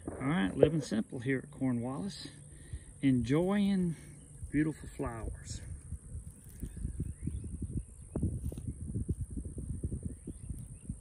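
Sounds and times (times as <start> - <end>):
wind buffeting phone microphone: 0.0 - 1.1, 3.6 - 11.0
bird chirps: 6.3 - 8.8, 10.0 - 11.0.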